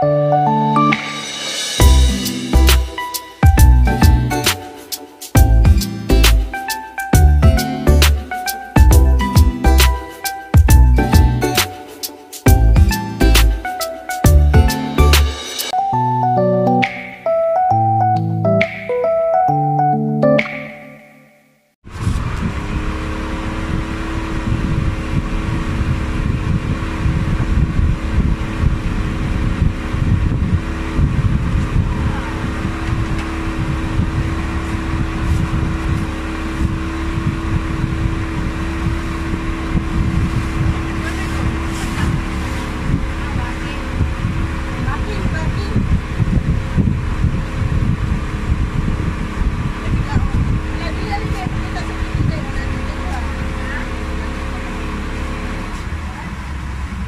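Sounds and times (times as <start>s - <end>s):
outboard motor running: 22.6s - 57.0s
wind buffeting microphone: 23.7s - 53.5s.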